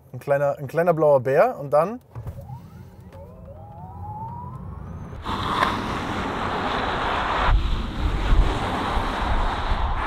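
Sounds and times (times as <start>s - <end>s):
low road rumble: 2.0s - 10.0s
electric motor whine rising: 2.2s - 9.4s.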